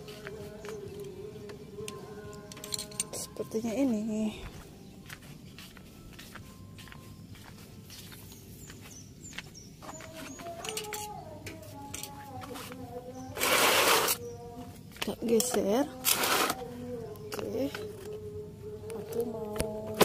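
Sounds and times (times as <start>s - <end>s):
light footsteps: 0.0s - 3.2s, 3.8s - 10.7s
faint melody of held notes: 0.0s - 8.6s.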